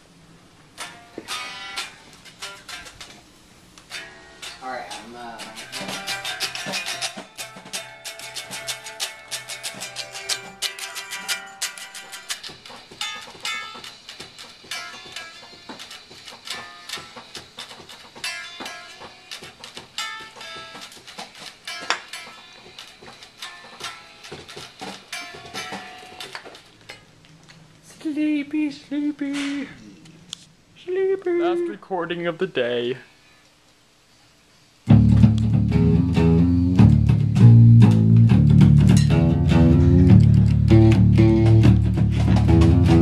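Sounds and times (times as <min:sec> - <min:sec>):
guitar picked fast: 0:05.4 - 0:26.3, 0:34.9 - 0:43.0.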